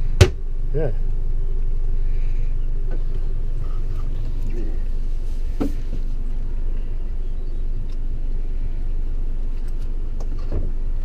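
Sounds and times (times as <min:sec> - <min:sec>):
boat engine rumbling: 0:00.0 - 0:11.0.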